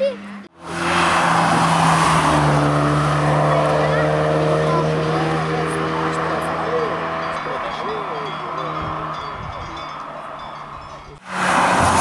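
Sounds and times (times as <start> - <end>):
car engine at high revs: 0.2 - 9.2, 11.2 - 12.0.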